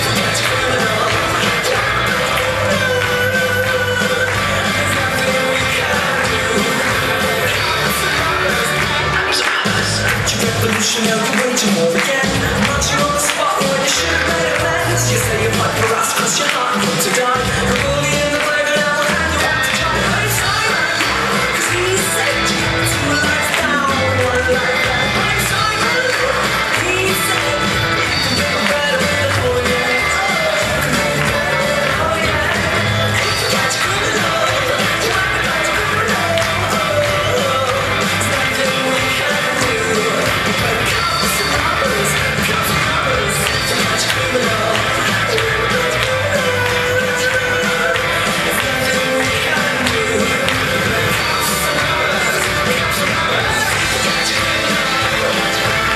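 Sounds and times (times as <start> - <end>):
rock and roll song with singing: 0.0 - 55.9.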